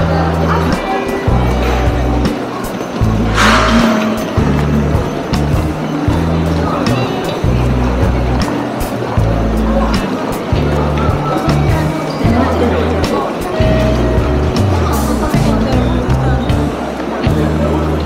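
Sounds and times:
crowd chatter: 0:00.0 - 0:18.0
brief hiss: 0:03.3 - 0:04.6.

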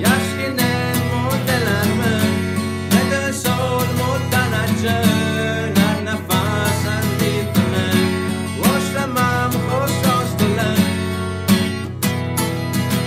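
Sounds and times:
plucked string instrument song: 0:00.0 - 0:13.0.

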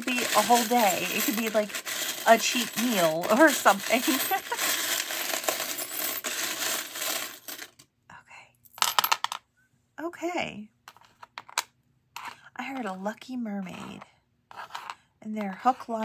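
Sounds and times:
metal charms jingling: 0:00.0 - 0:07.7
charms clinking on a board: 0:00.0 - 0:07.8.

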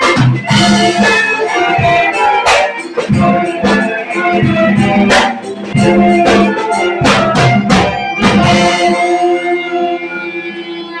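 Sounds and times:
sharp drum strikes: 0:00.0 - 0:09.4
recorders playing: 0:00.0 - 0:11.0
saxophones: 0:00.0 - 0:11.0
violin: 0:00.0 - 0:11.0.

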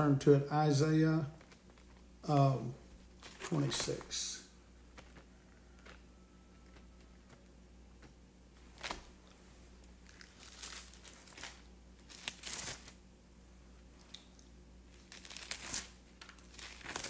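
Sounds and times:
thin pages turning: 0:01.4 - 0:02.1, 0:04.9 - 0:06.0, 0:08.0 - 0:09.2, 0:10.0 - 0:13.0, 0:14.9 - 0:17.0.

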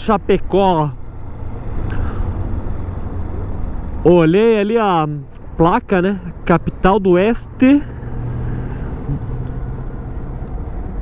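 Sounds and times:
motorcycle engine rumble: 0:00.0 - 0:11.0
road noise: 0:00.0 - 0:11.0.

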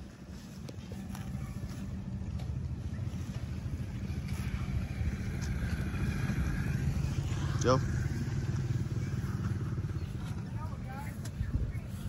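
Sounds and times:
motor vehicle engine rumble: 0:00.0 - 0:12.0.

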